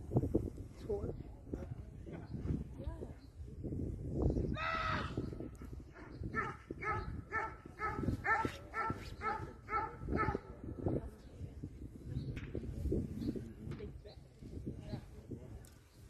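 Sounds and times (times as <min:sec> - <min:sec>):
dog barking rapidly: 0:06.0 - 0:10.4.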